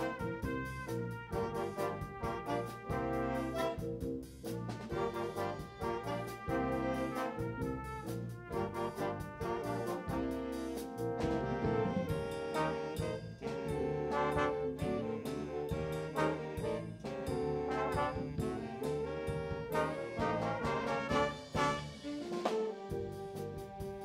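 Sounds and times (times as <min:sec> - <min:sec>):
brass section holding chords: 0:00.0 - 0:24.0
drums: 0:00.0 - 0:24.0.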